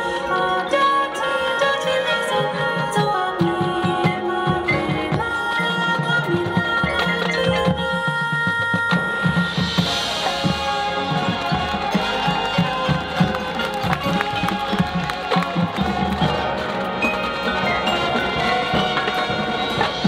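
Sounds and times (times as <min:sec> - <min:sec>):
marching band playing: 0:09.2 - 0:20.0.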